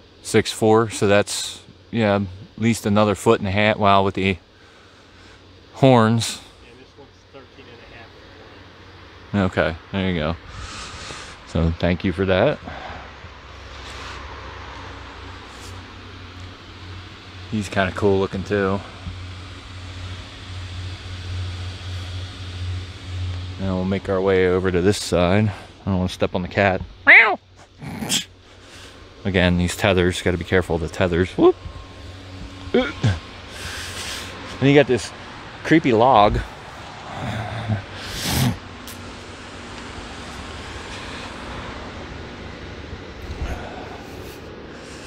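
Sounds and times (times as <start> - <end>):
blower fans humming: 0.0 - 45.0
rushing air: 12.6 - 17.5, 36.2 - 45.0.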